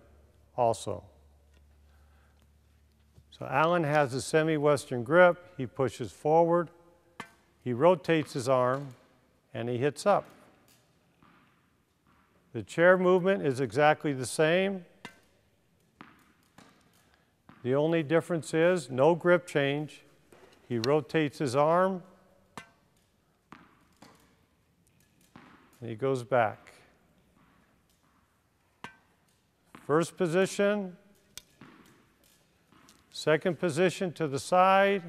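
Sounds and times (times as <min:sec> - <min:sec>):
tennis ball tapped off racket: 0:07.2 - 0:07.5, 0:10.2 - 0:12.4, 0:16.0 - 0:17.7, 0:22.5 - 0:24.4, 0:25.2 - 0:25.8, 0:26.6 - 0:30.0, 0:31.3 - 0:33.1
tennis ball bouncing on court: 0:07.2 - 0:09.0, 0:10.0 - 0:12.5, 0:14.6 - 0:17.8, 0:22.5 - 0:25.8, 0:26.5 - 0:33.2
racket hitting tennis ball: 0:07.2 - 0:09.2, 0:10.0 - 0:12.5, 0:13.1 - 0:17.8, 0:20.3 - 0:33.8.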